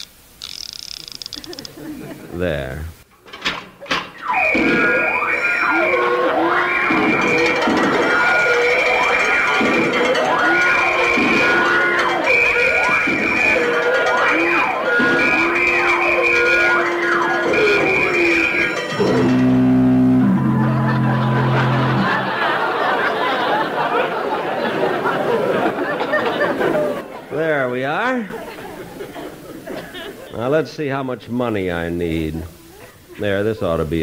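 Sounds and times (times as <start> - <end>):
wailing burglar alarm: 4.1 - 24.1
low steady horn blasts: 4.3 - 22.3.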